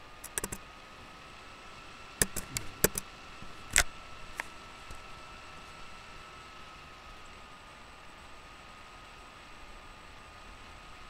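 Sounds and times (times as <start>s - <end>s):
keyboard and mouse clicks: 0.2s - 0.6s, 2.2s - 4.5s.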